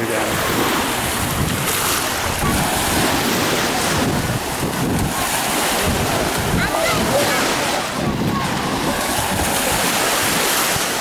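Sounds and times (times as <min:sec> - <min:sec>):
small waves washing onto shore: 0:00.0 - 0:11.0
wind buffeting microphone: 0:00.0 - 0:11.0.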